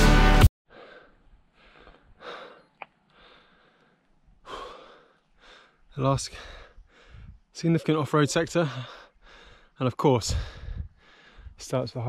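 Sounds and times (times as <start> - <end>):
man breathing: 0.7 - 7.6, 8.6 - 11.6.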